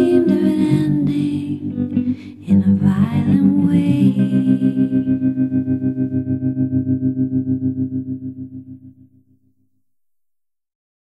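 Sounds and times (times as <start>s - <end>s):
pulsing guitar chord: 0.0s - 9.2s.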